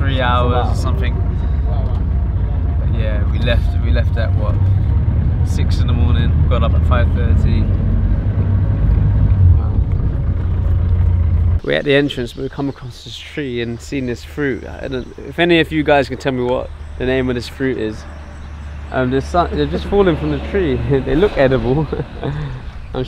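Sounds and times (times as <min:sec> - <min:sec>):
voices talking: 0:00.0 - 0:08.0, 0:11.5 - 0:23.0
engine and road rumble: 0:00.0 - 0:23.0.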